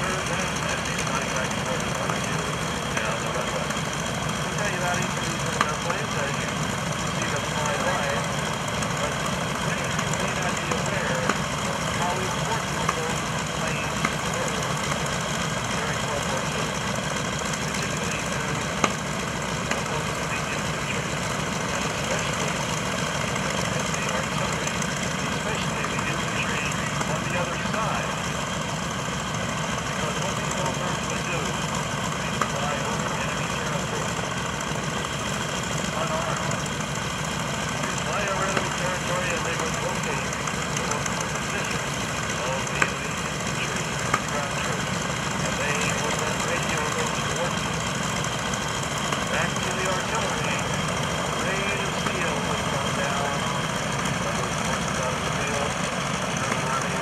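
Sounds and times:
engine drone: 0.0 - 57.0.

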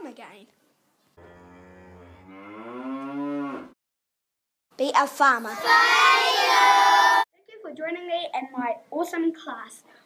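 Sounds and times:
cow mooing: 1.2 - 3.8.

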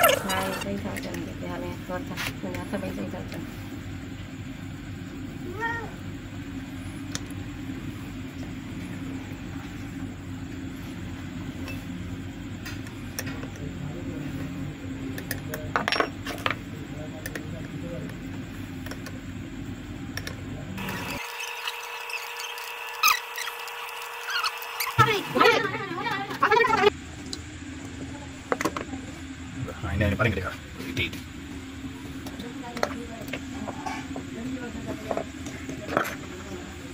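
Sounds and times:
steady low hum: 0.0 - 36.9.

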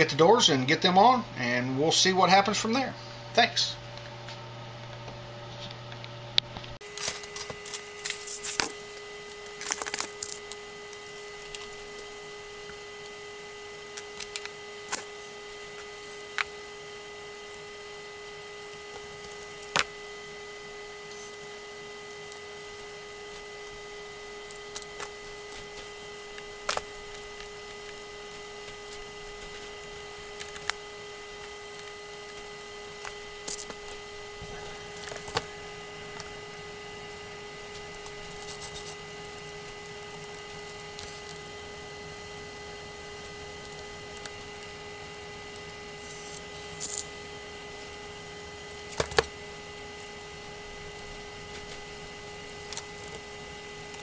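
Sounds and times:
steady electrical hum: 0.0 - 54.0.

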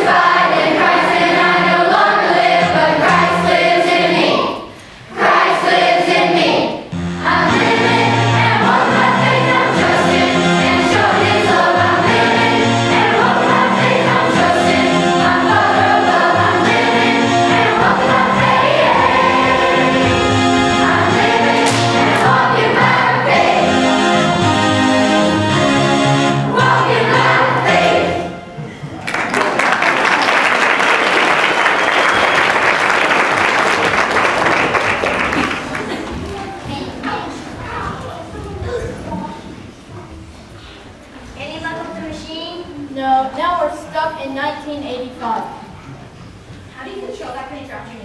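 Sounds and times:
children's choir singing: 0.0 - 28.9.

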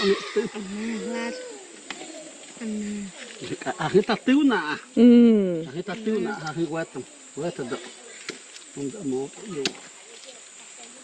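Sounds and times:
high-pitched insect drone: 0.0 - 11.0
man talking: 8.8 - 9.8.

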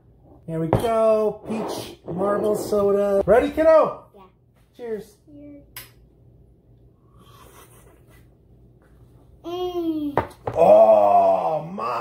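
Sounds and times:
faint low room noise: 0.0 - 12.0.

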